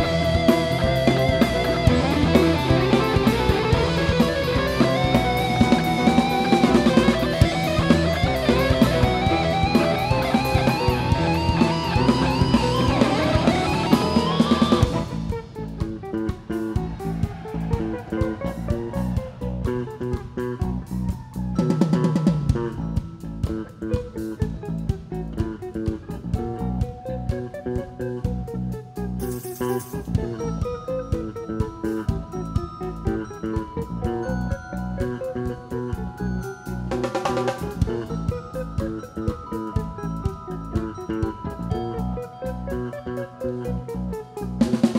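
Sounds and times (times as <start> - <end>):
bass guitar: 0.0 - 44.9
drum kit beat: 0.0 - 44.9
electric guitar: 0.0 - 44.9.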